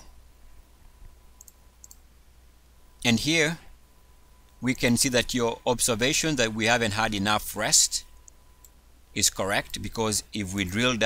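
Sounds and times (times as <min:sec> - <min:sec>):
faint steady low hum: 0:00.0 - 0:11.0
faint computer mouse clicks: 0:01.4 - 0:02.0.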